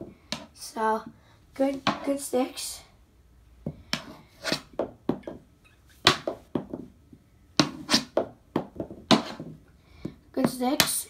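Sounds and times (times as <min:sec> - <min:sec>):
hockey stick tapping ball on floor: 0:00.0 - 0:00.6, 0:01.7 - 0:02.2, 0:03.6 - 0:11.0.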